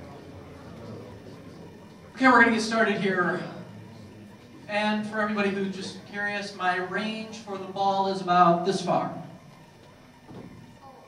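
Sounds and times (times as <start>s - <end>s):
man's voice: 2.2s - 3.8s, 4.7s - 9.3s.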